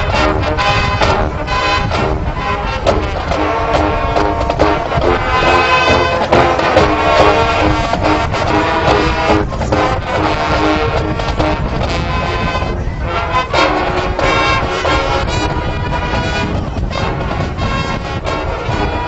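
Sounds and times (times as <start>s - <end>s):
drums: 0.0s - 18.9s
marching band playing: 0.0s - 19.0s
sustained brass chords: 0.0s - 19.0s.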